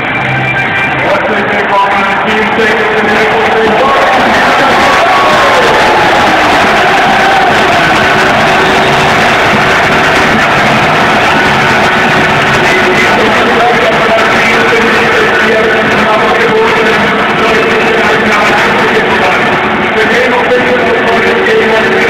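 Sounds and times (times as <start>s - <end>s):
crowd noise: 0.0s - 22.0s
loud rock music: 0.0s - 22.0s.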